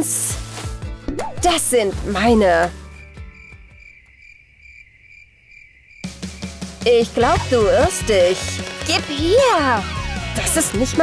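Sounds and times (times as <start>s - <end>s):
cricket chirping: 2.8s - 7.0s.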